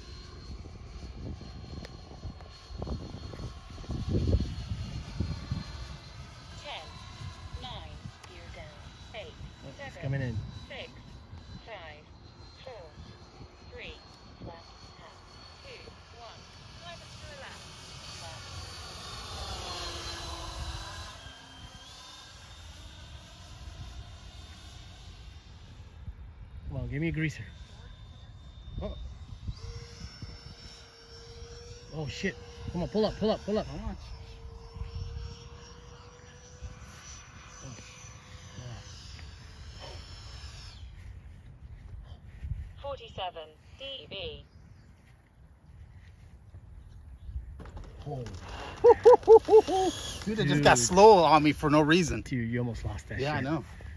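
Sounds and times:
wind rumble on microphone: 0.0 - 15.1, 25.0 - 31.8, 33.6 - 36.0, 40.3 - 43.3
model jet fans whining: 0.0 - 53.9.

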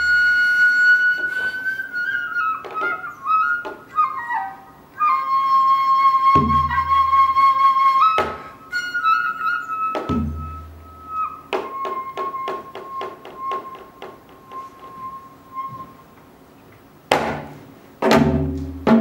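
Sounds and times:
bamboo flute holding notes: 0.0 - 16.5.

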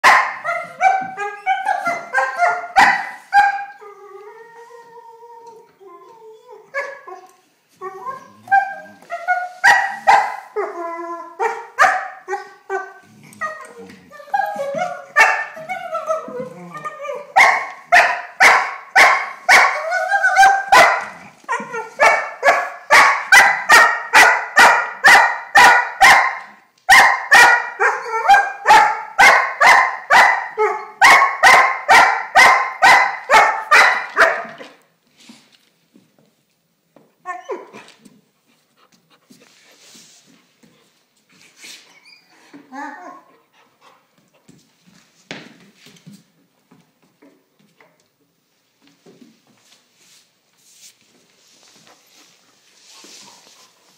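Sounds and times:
puppy whining: 0.4 - 2.6, 3.6 - 11.6, 12.3 - 17.4, 37.2 - 38.0, 41.7 - 43.7.

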